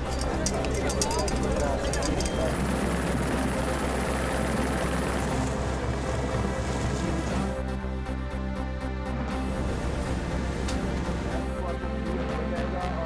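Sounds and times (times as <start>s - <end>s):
reporters' voices: 0.0s - 3.0s, 11.3s - 13.0s
music with steady low beat: 0.0s - 13.0s.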